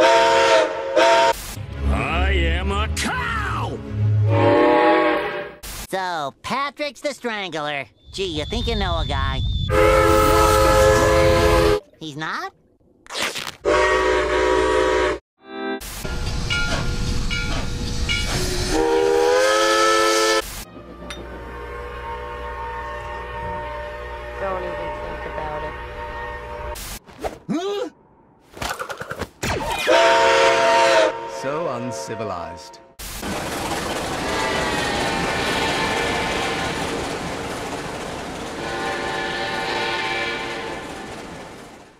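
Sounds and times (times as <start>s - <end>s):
steam whistle blasts: 0.0s - 1.4s, 4.2s - 5.6s, 9.7s - 11.8s, 13.7s - 15.2s, 18.4s - 20.5s, 21.4s - 26.8s, 29.8s - 32.8s
train rumble and rail clatter: 16.1s - 26.8s, 33.1s - 41.9s.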